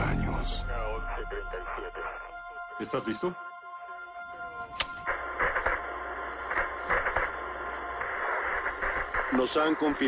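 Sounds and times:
radio static hiss and crackling: 4.8s - 10.0s.

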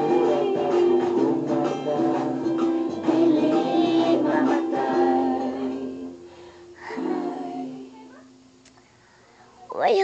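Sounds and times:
ukulele chord ringing: 0.0s - 5.8s.

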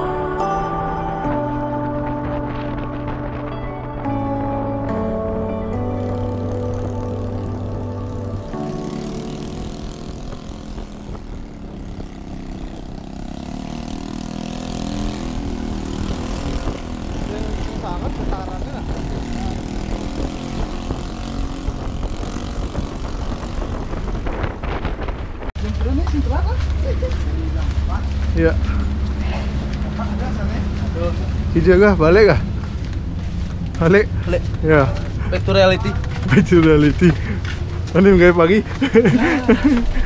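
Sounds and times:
background music: 0.0s - 11.5s
scooter engine hum: 0.0s - 40.0s
wind noise on microphone: 1.0s - 4.8s, 9.3s - 26.6s.

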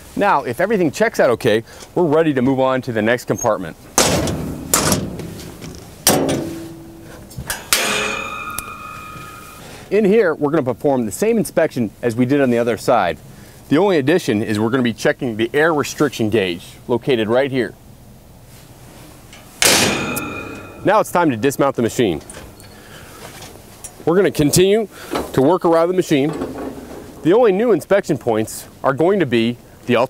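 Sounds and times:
metal door clanking: 3.9s - 9.7s, 19.6s - 21.0s, 26.1s - 27.3s.

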